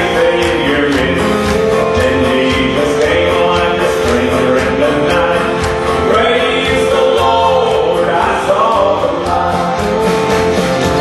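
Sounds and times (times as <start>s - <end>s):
man singing into microphone: 0.0s - 10.2s
live country band with guitar: 0.0s - 11.0s.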